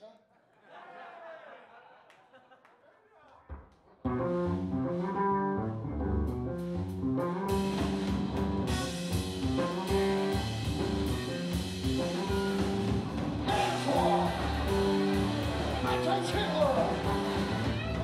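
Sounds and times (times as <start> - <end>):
electric bass: 4.1 - 18.0
drum kit: 6.2 - 18.0
electric guitar riff: 7.5 - 18.0.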